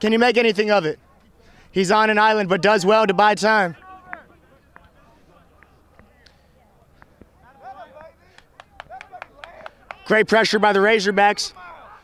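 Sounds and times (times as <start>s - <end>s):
distant players shouting: 1.9s - 6.2s, 7.1s - 12.0s.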